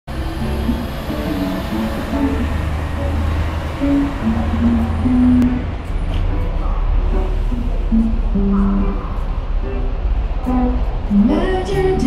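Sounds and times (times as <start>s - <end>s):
electric and acoustic guitars: 0.1s - 12.0s
steady low amp hum: 0.1s - 12.0s.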